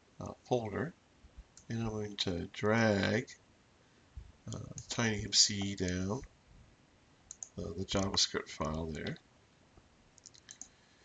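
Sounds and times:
keyboard and mouse clicks: 7.3 - 8.2, 10.2 - 10.7.

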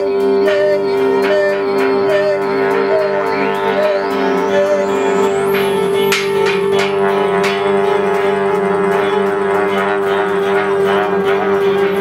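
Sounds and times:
electric guitar drone: 0.0 - 12.0.

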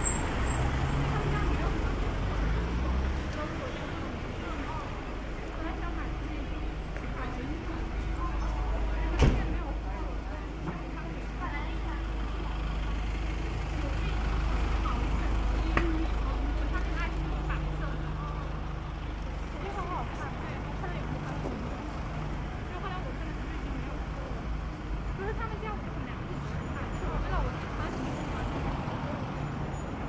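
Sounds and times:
passers-by talking: 0.0 - 30.0
road traffic rumble: 0.0 - 30.0.

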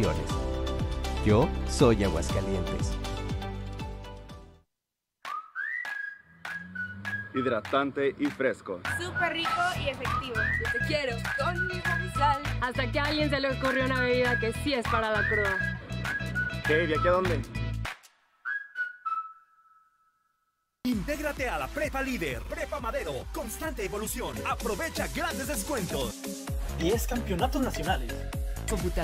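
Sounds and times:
whistled melody: 5.2 - 7.9, 8.9 - 12.5, 13.8 - 17.6, 18.4 - 20.5.

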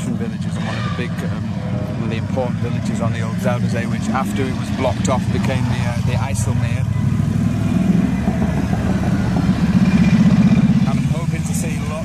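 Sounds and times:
faint voices: 0.0 - 9.5, 10.3 - 12.0
engine running: 0.0 - 12.0.

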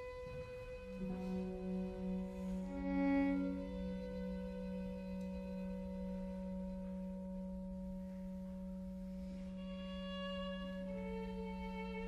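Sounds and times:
orchestra holding soft chord: 0.0 - 12.0.

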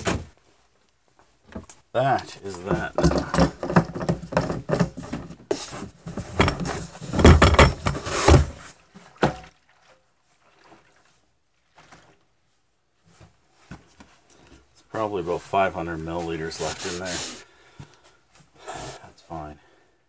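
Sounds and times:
plastic gas can knocking and rubbing: 2.6 - 8.6.

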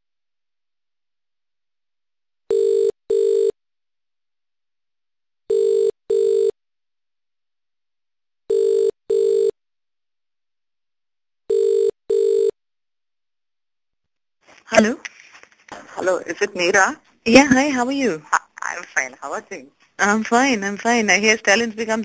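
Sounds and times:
telephone ringback tone: 2.5 - 3.5, 5.5 - 6.5, 11.5 - 12.6.

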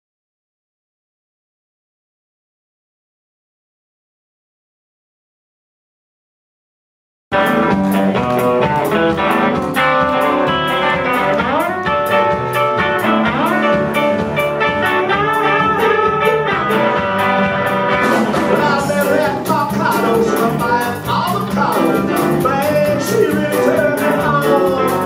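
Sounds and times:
drum kit beat: 7.3 - 25.0
electric bass: 7.3 - 25.0
electric guitar: 7.3 - 25.0
keyboard: 7.4 - 25.0
tenor saxophone: 10.6 - 18.5.

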